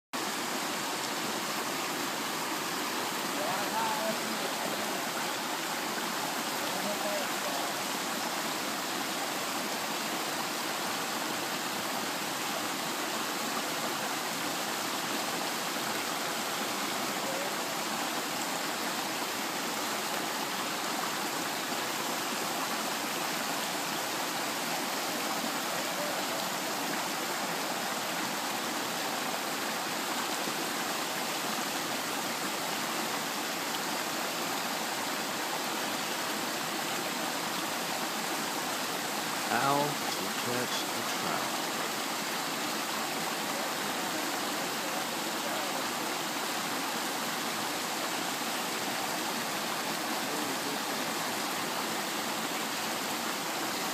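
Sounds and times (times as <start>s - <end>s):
stream rushing over rocks: 0.2s - 53.9s.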